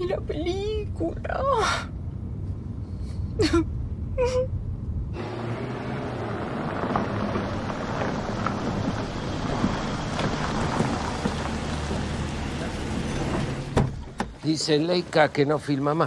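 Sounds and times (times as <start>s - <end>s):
low engine rumble: 0.0s - 16.0s
woman sobbing: 3.3s - 4.6s
tyres crunching on gravel: 5.2s - 13.8s.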